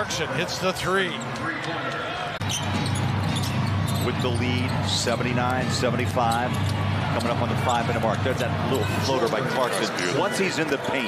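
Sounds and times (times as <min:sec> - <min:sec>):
crowd noise with voices: 0:00.0 - 0:11.0
sharp basketball court sounds: 0:01.1 - 0:08.6.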